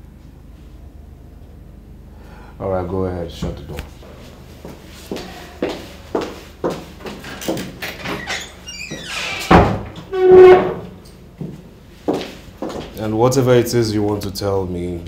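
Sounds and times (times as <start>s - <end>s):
footsteps across a room: 3.3s - 13.4s
wooden door pushed shut: 7.9s - 10.8s
door squeak: 7.9s - 11.1s.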